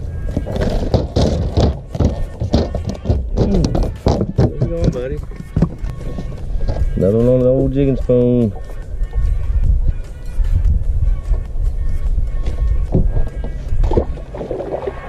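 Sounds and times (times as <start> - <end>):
background music: 0.0 - 15.0
held humming tone: 0.0 - 15.0
fish flopping on boat deck: 0.2 - 7.0.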